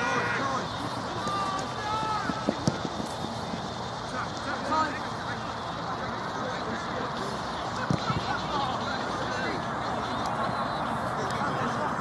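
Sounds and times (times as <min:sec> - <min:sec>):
players shouting: 0:00.0 - 0:12.0.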